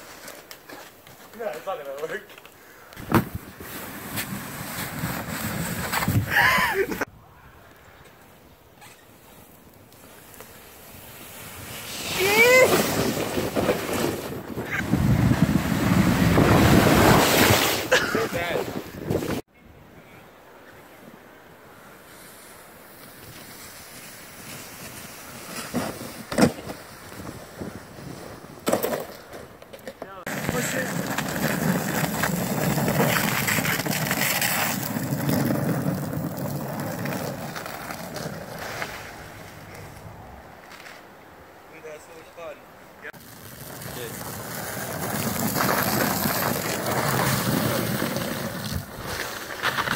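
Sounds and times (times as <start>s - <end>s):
plastic sled scraping on snow: 0.0s - 2.4s, 3.0s - 7.1s, 10.0s - 19.4s, 22.0s - 40.0s, 43.1s - 49.9s
person whooping: 12.1s - 12.8s.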